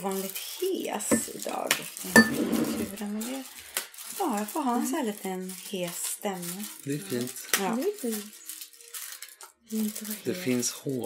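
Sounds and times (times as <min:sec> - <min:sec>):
women talking: 0:00.0 - 0:03.5, 0:04.2 - 0:06.7, 0:07.6 - 0:08.3, 0:09.7 - 0:10.5.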